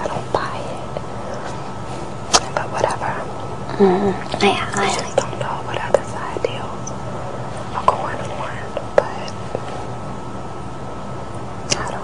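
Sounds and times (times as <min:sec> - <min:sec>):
people talking quietly: 0:00.0 - 0:09.9, 0:11.3 - 0:12.0.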